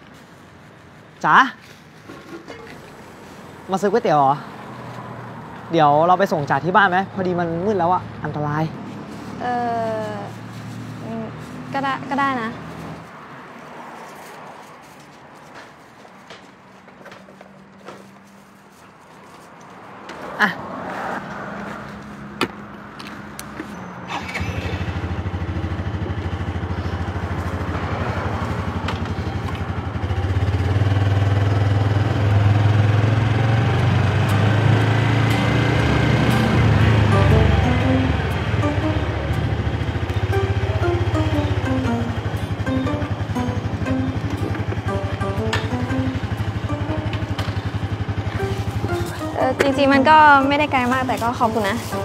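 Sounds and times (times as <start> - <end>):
motorcycle engine running: 24.4 - 52.0
gentle background music: 33.9 - 52.0.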